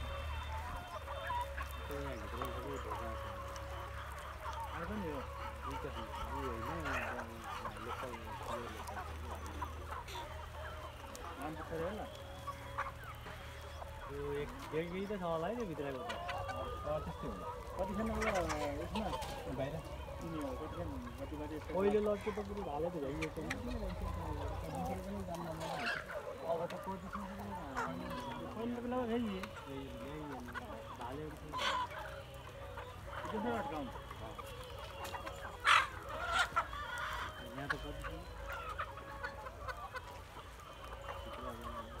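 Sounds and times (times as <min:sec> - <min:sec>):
chickens clucking: 0:00.0 - 0:42.0
loud chicken call: 0:00.0 - 0:42.0.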